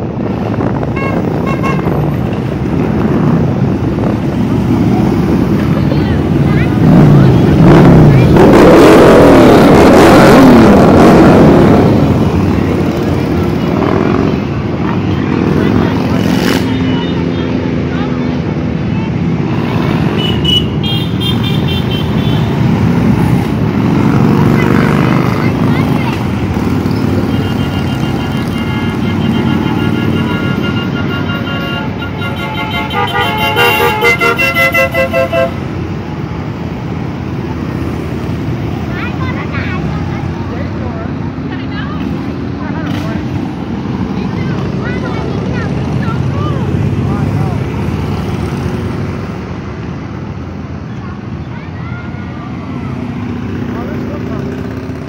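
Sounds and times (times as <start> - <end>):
motorcycles riding past: 0.0 - 55.0
motorcycle horns honking: 0.9 - 2.1, 20.0 - 22.7, 27.0 - 35.8.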